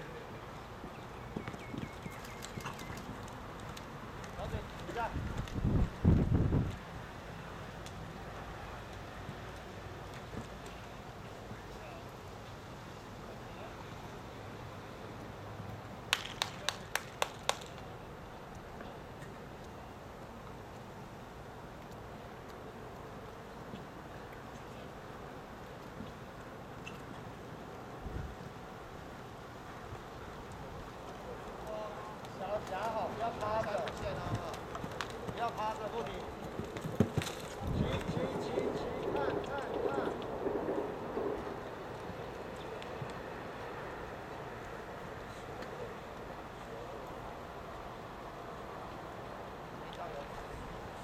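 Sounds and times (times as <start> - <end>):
wind on microphone: 5.0 - 6.8, 37.6 - 43.1.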